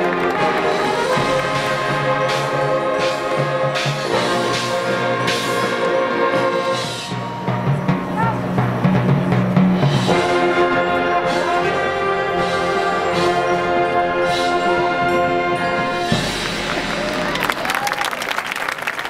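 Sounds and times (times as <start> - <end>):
brass band chord: 0.0 - 17.0.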